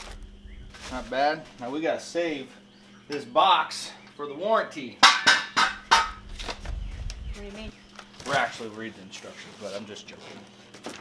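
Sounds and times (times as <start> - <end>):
low rumble: 5.7 - 7.9.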